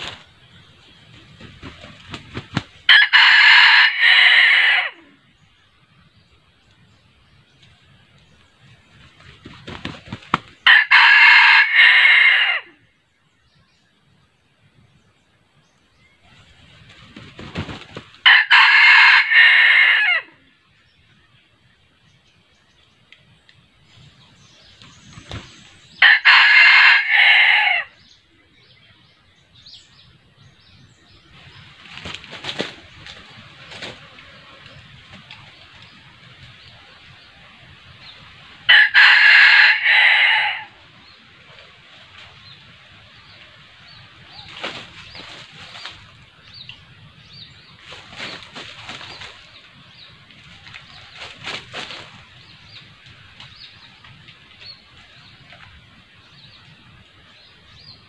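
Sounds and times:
rooster crowing: 2.9s - 5.0s, 10.7s - 12.7s, 18.2s - 20.3s, 26.0s - 27.9s, 38.7s - 40.8s.

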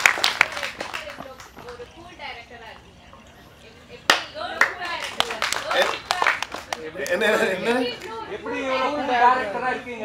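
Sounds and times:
sharp hand claps: 0.0s - 1.8s.

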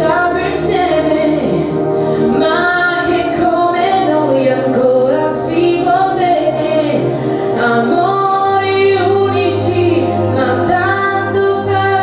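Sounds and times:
young woman singing: 0.0s - 1.7s, 2.3s - 12.0s.

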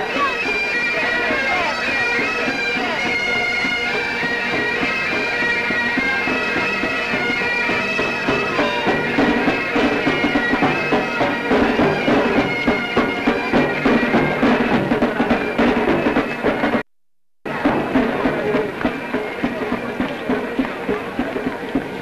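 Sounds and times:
bagpipes playing over drone: 0.0s - 16.8s
drum beats: 0.0s - 22.0s.

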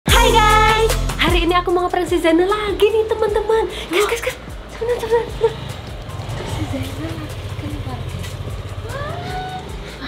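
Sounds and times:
vehicle engine humming: 1.3s - 10.0s.

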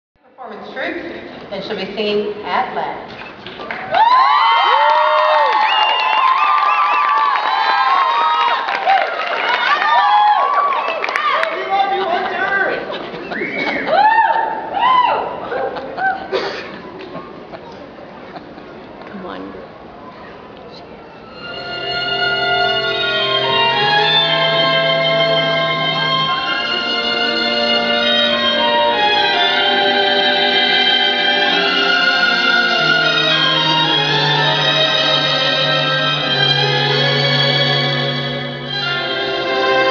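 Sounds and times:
audience cheering and whooping: 3.7s - 17.0s.

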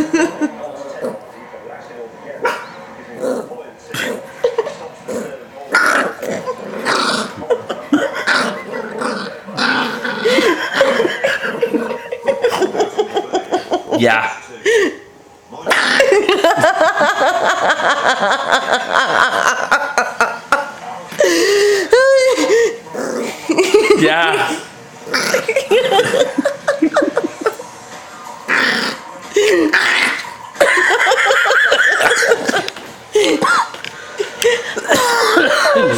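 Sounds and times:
small dog growling: 3.1s - 4.2s, 5.1s - 12.0s, 22.9s - 23.4s, 25.0s - 25.6s, 28.5s - 30.4s.

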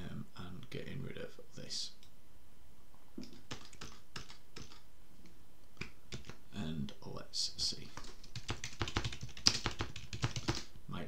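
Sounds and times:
keyboard keys clicking: 3.2s - 4.8s, 8.0s - 10.7s.

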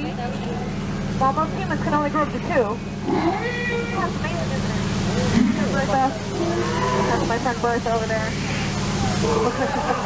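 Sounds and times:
boat motor hum: 0.0s - 10.0s
elephants trumpeting and squealing: 2.9s - 4.5s, 5.1s - 10.0s.

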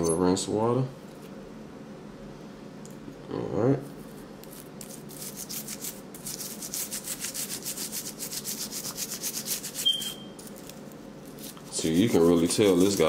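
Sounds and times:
toothbrush scrubbing metal: 4.4s - 10.7s, 11.3s - 13.0s.

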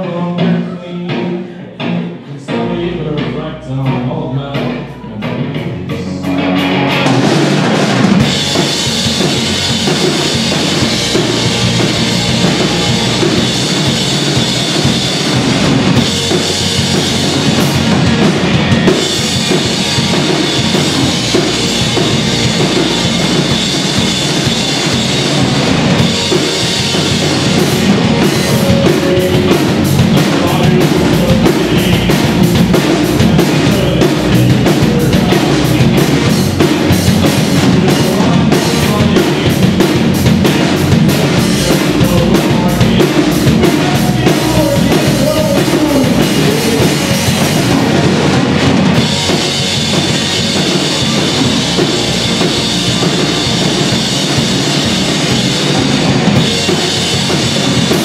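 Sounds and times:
live rock band playing: 0.0s - 58.0s.

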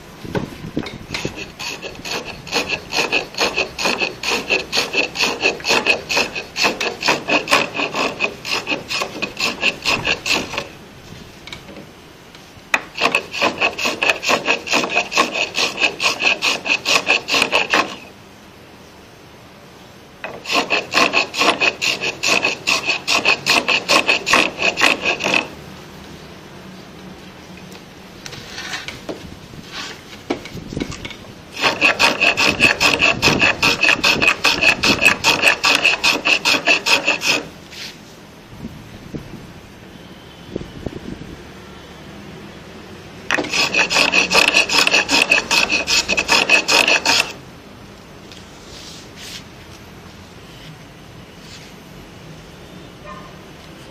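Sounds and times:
hand plane shaving wood: 1.2s - 10.7s, 12.8s - 18.1s, 20.2s - 25.5s, 31.6s - 37.9s, 43.3s - 47.4s.

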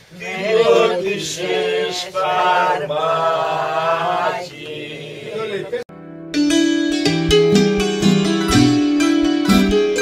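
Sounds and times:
group singing unaccompanied: 0.1s - 5.8s.

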